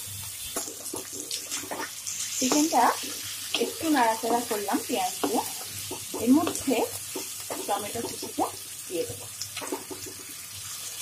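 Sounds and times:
chicken and onion sizzling in oil: 0.0 - 11.0.

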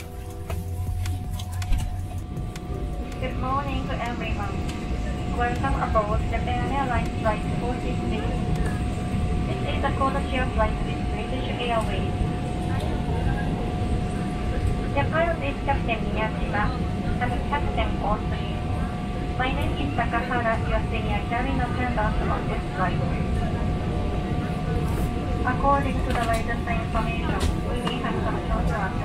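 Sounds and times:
announcement over cabin speakers: 0.0 - 29.0
cabin low rumble: 0.0 - 29.0.

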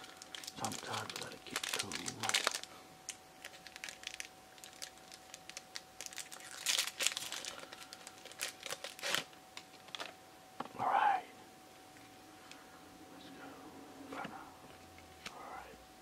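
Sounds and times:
trading cards crinkling and rustling: 0.0 - 10.2.

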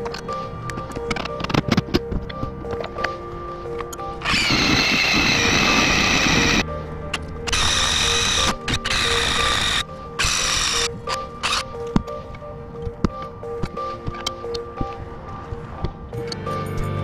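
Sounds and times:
cordless driver driving screws: 4.2 - 6.6, 7.5 - 11.6.

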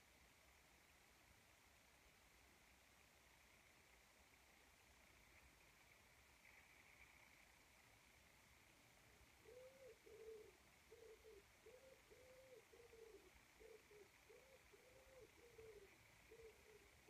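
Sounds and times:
pigeon cooing: 9.4 - 17.0.

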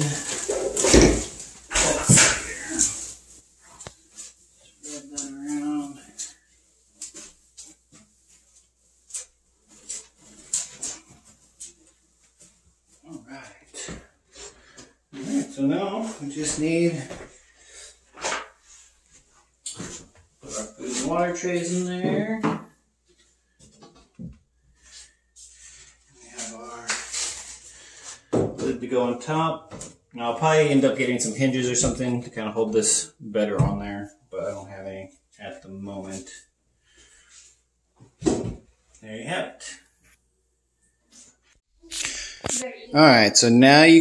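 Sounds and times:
wood shavings rustling: 0.0 - 6.4
rustling: 0.0 - 13.6
man speaking: 1.7 - 3.1, 4.8 - 6.2, 15.2 - 17.2, 20.4 - 22.5, 28.6 - 36.4, 42.9 - 44.0.

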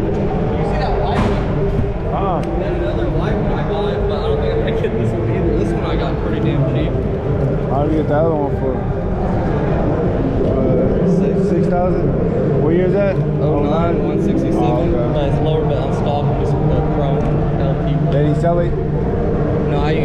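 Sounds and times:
steady low hum: 0.0 - 20.0
voices talking in a hall: 0.0 - 20.0.

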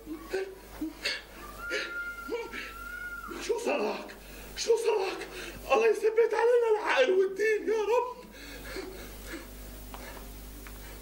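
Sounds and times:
man shouting: 0.2 - 8.2.

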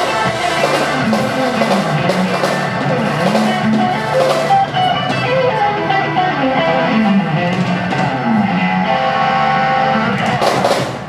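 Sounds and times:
keyboard bass: 0.0 - 10.8
drums: 0.0 - 11.0
electric guitar held notes: 0.0 - 11.0.

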